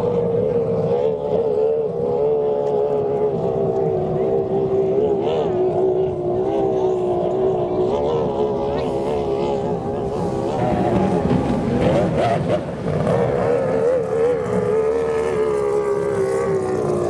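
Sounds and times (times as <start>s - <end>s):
distant powerboat engine at full throttle: 0.0s - 17.0s.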